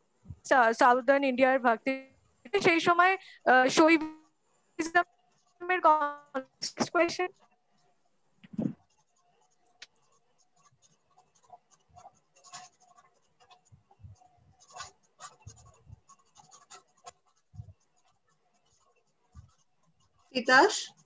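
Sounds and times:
clicks and crackles of broken audio: 6.3 - 21.0.

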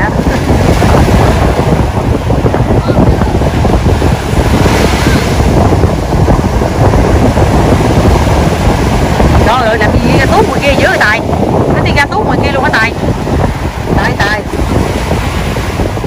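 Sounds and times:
ocean waves breaking: 0.0 - 16.0
surf washing through shallows: 0.0 - 16.0
wind rumbling on microphone: 0.0 - 16.0.

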